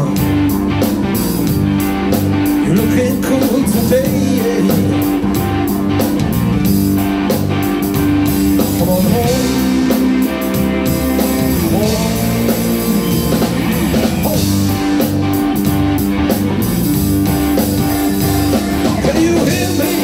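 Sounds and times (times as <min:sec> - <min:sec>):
blues-rock band playing: 0:00.0 - 0:20.0
electric guitar lead lines: 0:00.0 - 0:20.0.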